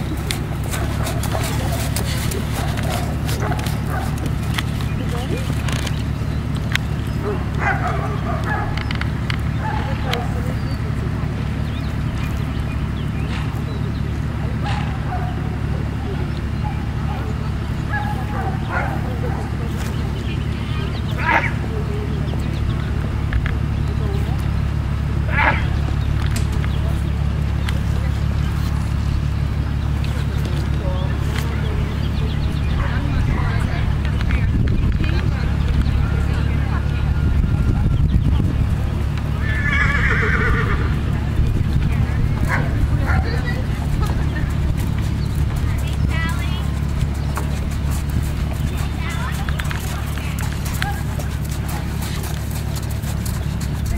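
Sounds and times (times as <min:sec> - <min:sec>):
steady low rumble: 0:00.0 - 0:53.9
dog barking: 0:00.7 - 0:04.3, 0:07.2 - 0:08.9, 0:09.6 - 0:10.6, 0:14.6 - 0:15.6, 0:16.6 - 0:19.8, 0:21.2 - 0:21.7, 0:25.3 - 0:25.8, 0:42.4 - 0:43.6
horse whinnying: 0:39.4 - 0:41.1.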